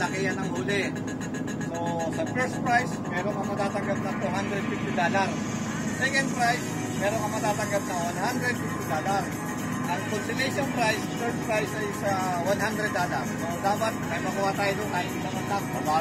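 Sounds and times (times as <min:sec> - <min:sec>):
man talking: 0:00.0 - 0:01.0, 0:01.7 - 0:05.4, 0:06.0 - 0:09.3, 0:09.9 - 0:16.0
boat engine drone: 0:00.0 - 0:16.0.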